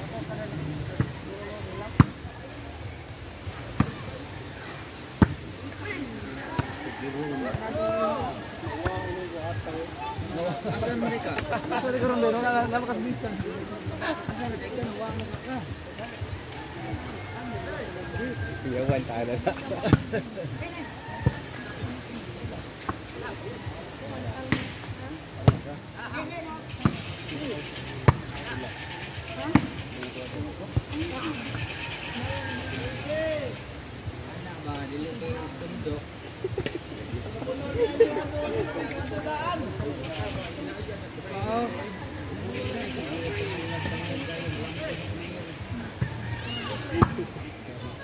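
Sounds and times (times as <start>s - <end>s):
faint voices: 0.0s - 48.0s
volleyball hand slaps: 24.4s - 24.8s, 47.0s - 47.2s.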